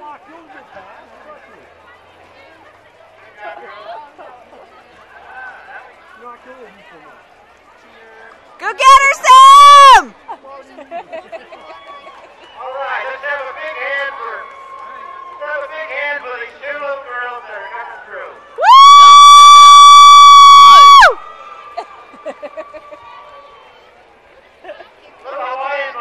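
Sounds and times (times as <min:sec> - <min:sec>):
spectators cheering: 0:08.7 - 0:10.1, 0:11.5 - 0:16.3, 0:17.5 - 0:23.8.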